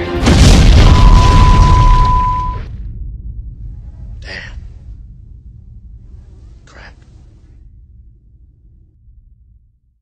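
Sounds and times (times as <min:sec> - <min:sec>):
loud explosion with rumble: 0:00.2 - 0:03.8
high-pitched beep: 0:00.9 - 0:02.7.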